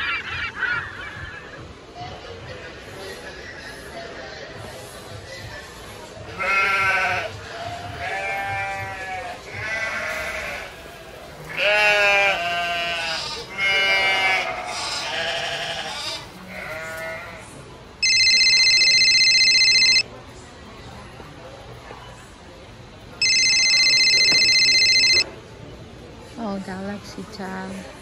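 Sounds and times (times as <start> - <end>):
loud steady electronic beep: 18.0 - 20.0, 23.2 - 25.2.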